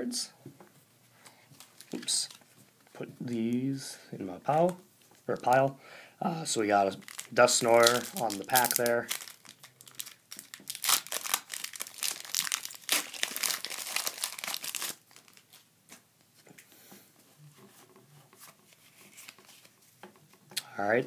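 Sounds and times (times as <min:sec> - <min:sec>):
foil wrapper tearing and crinkling: 0:06.9 - 0:15.6
cards rustling: 0:06.9 - 0:16.0, 0:17.8 - 0:20.3.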